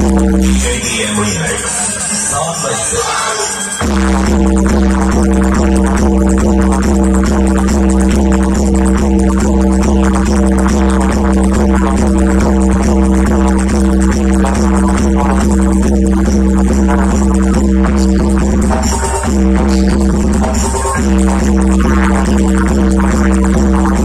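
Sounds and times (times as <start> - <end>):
loud droning music with heavy bass: 0.0 - 24.0.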